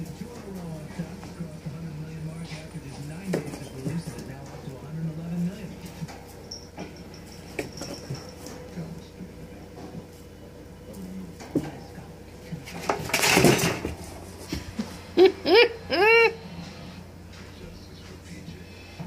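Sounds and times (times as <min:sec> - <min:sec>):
faint indistinct voices: 0:00.0 - 0:15.2, 0:15.9 - 0:19.0.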